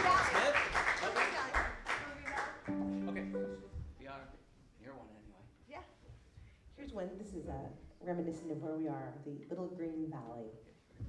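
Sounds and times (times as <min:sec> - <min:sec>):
string instrument held notes: 0:02.7 - 0:04.2.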